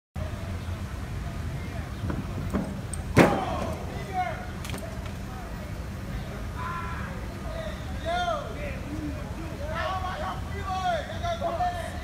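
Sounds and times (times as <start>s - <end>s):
loud metallic bang: 2.1s - 3.8s.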